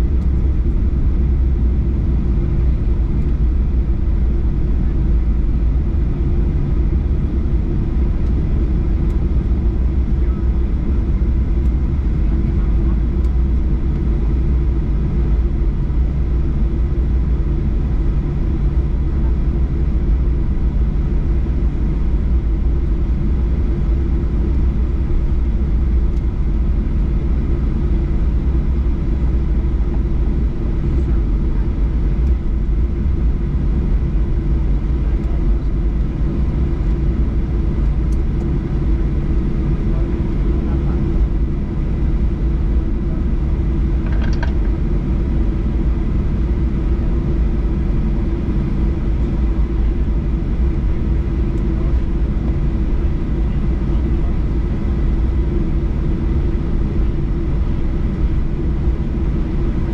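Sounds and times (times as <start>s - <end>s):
aircraft cabin low rumble: 0.0s - 59.9s.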